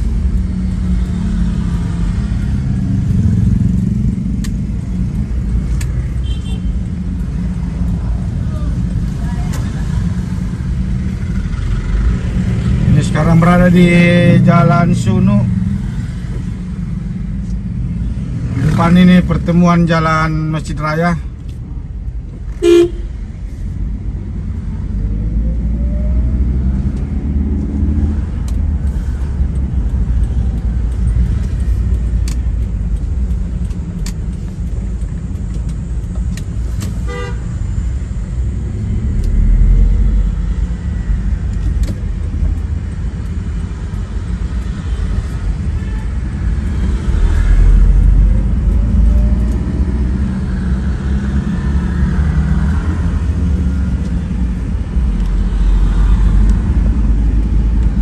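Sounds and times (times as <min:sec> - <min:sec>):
car engine and road noise: 0:00.0 - 0:58.0
vehicle horn toot: 0:06.2 - 0:06.7, 0:22.6 - 0:23.1, 0:37.1 - 0:37.4.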